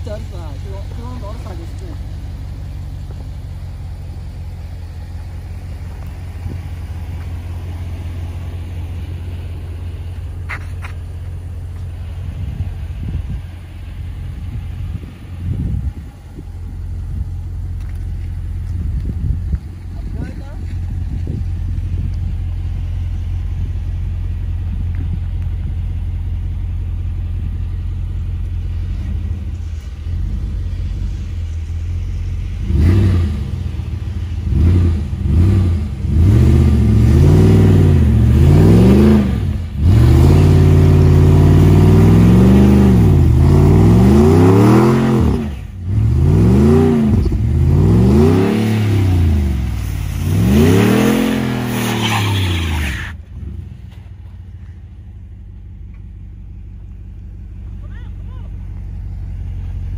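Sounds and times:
pickup engine idling and revving: 0.0s - 59.9s.

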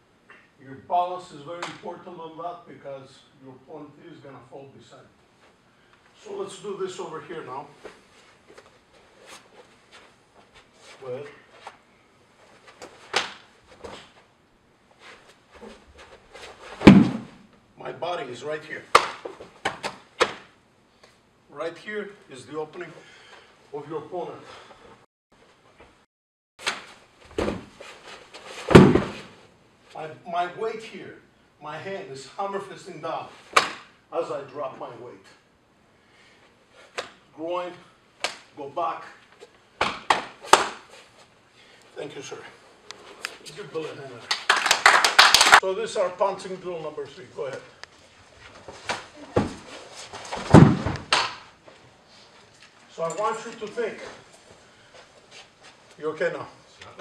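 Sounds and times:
sharp slaps of strikes: 13.1s - 13.4s, 18.9s - 20.5s, 33.6s - 33.9s, 38.2s - 38.5s, 50.8s - 51.4s
bodies scuffing on training mat: 15.0s - 17.5s, 26.6s - 29.4s, 48.0s - 52.5s
sharp impacts on mat: 16.6s - 17.5s, 28.5s - 29.4s, 48.7s - 51.4s
body thud onto padded mat: 16.8s - 17.4s, 28.6s - 29.3s, 50.4s - 51.2s.

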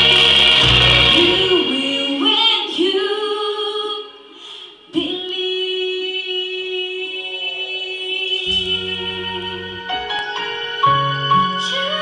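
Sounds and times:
women singing unaccompanied: 1.1s - 4.2s, 4.9s - 10.0s.

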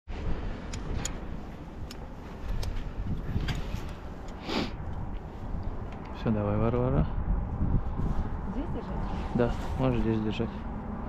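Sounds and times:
wind rumbling on microphone: 0.1s - 11.0s
harness hardware clicks: 0.6s - 6.2s.

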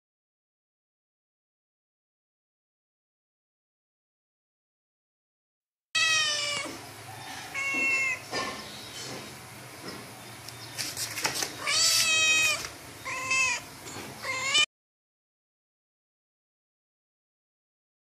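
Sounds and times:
cat and kittens meowing: 6.0s - 8.6s, 11.6s - 14.7s.

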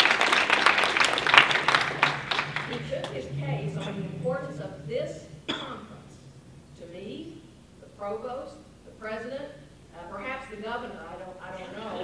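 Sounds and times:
woman speaking into microphone: 2.7s - 6.2s.

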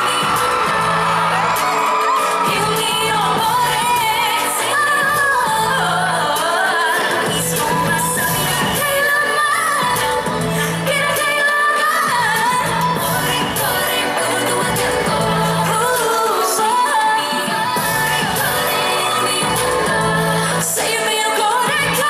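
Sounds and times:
pop backing track with bass: 0.0s - 22.0s
woman singing lead vocal: 0.0s - 22.0s.

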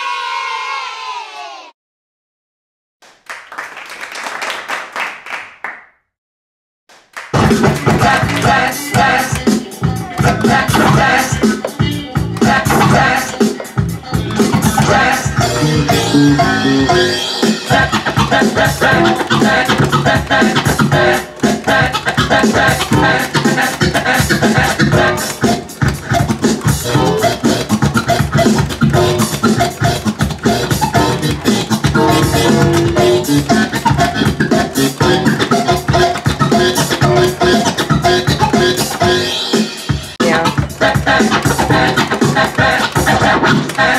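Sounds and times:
music with a steady beat: 7.3s - 43.9s
record scratching: 7.4s - 39.3s, 40.2s - 43.9s.

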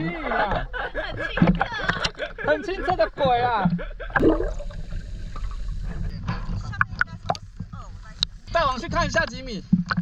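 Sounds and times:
sea water gurgling and sloshing: 0.0s - 10.0s.

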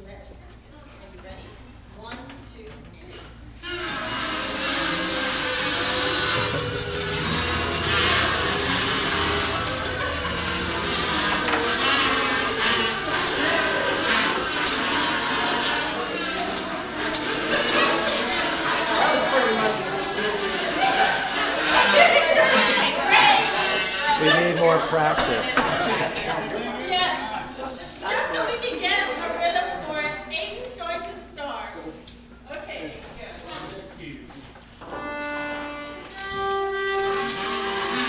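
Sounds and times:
kazoos playing melody: 3.6s - 27.0s, 35.0s - 38.0s
maracas rattling: 3.6s - 27.1s, 35.0s - 38.0s.

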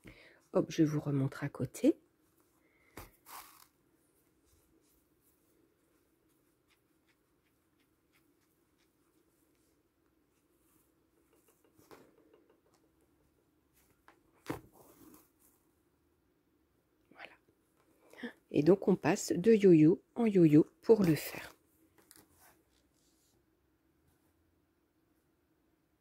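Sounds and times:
faint fabric rustles: 2.2s - 12.6s, 13.6s - 15.9s, 21.0s - 24.4s.

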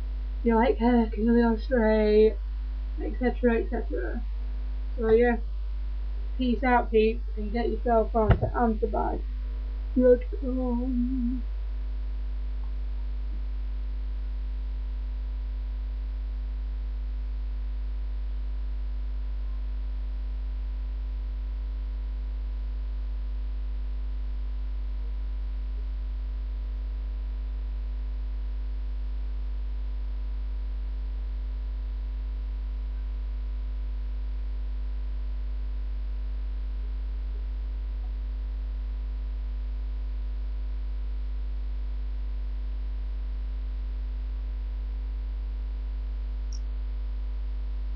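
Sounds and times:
mains hum: 0.0s - 47.9s
faint high steady tones: 6.4s - 11.4s.

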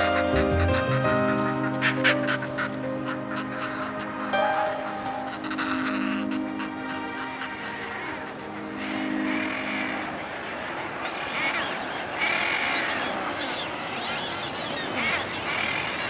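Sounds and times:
background music with low notes: 0.0s - 11.0s
seabird colony calling: 0.0s - 16.0s.

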